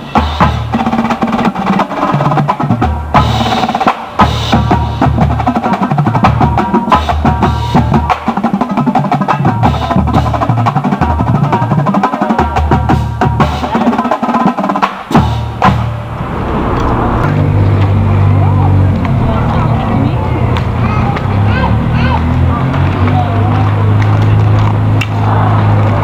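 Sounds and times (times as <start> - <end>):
marching drumline playing: 0.0 - 16.1
voices: 15.6 - 26.0.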